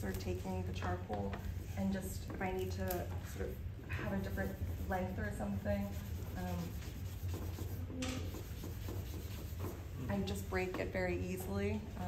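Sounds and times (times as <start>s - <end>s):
charcoal scratching on paper: 3.0s - 10.8s.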